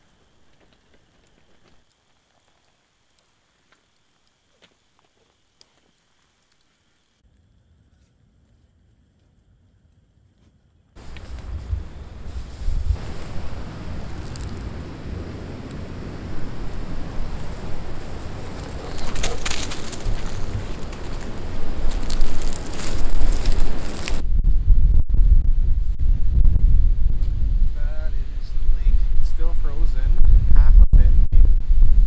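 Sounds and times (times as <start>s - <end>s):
strong wind rushing: 11.0s - 32.0s
wind buffeting microphone: 11.0s - 32.0s
brief crackles: 18.5s - 24.2s.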